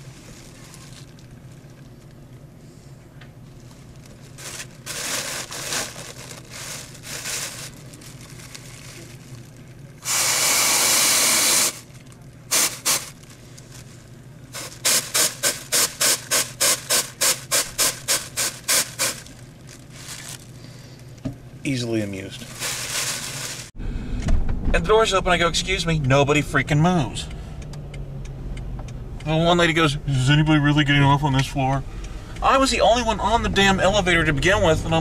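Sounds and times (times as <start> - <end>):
paper bag crinkling: 0.0 - 2.1, 3.5 - 10.3, 11.6 - 20.9, 22.3 - 23.8.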